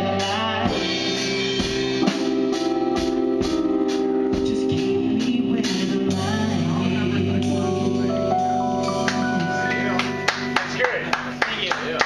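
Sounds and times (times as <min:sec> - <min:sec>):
electronic keyboard chord: 0:00.0 - 0:12.0
people clapping: 0:09.0 - 0:09.3, 0:09.9 - 0:12.0.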